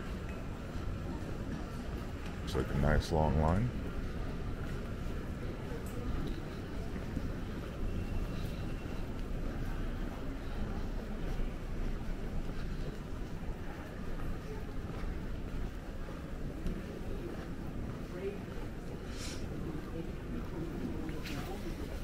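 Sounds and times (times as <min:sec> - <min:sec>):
murmur of voices: 0:00.0 - 0:22.0.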